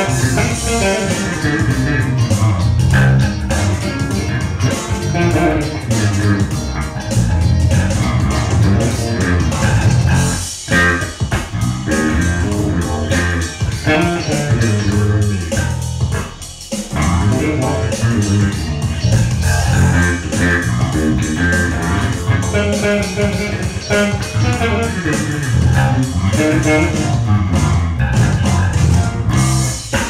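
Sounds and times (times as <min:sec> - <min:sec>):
backing track: 0:00.0 - 0:30.0
electric bass funk riff: 0:00.0 - 0:30.0.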